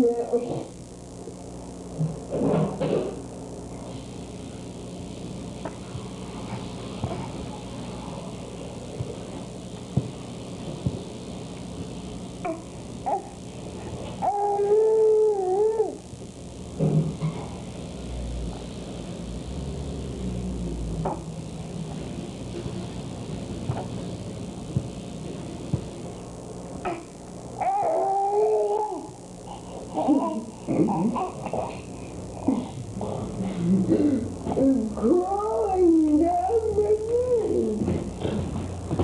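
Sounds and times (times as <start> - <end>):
steady low hum: 0.0 - 39.0
baby crying: 14.2 - 16.0, 26.8 - 29.1.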